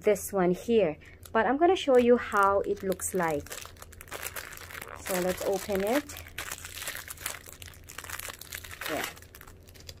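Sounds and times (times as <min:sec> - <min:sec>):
plastic wrapper crinkling: 0:01.1 - 0:10.0.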